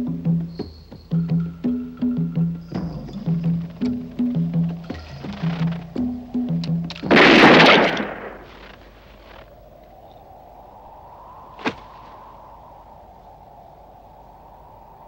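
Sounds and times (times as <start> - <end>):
revolver shot: 7.1 - 8.7.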